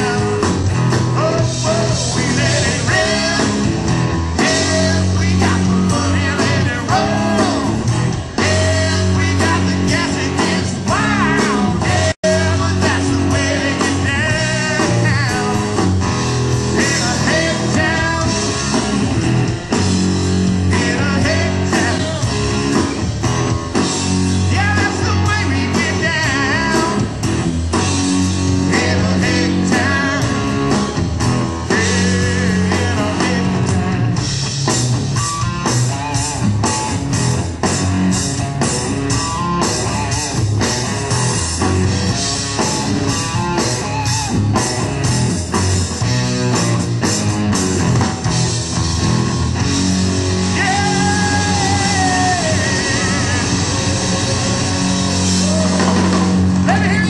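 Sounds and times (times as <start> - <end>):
drums keeping a steady beat: 0.0 - 57.0
electric guitar: 0.0 - 57.0
person singing: 4.4 - 7.8, 31.7 - 34.0, 50.5 - 57.0.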